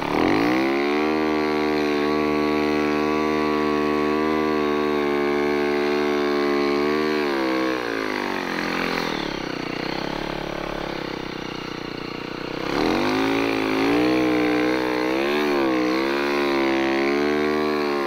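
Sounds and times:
snowbike engine revving: 0:00.0 - 0:18.0.

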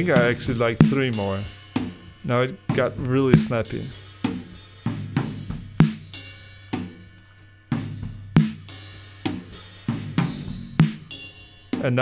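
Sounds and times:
drum kit groove: 0:00.0 - 0:12.0.

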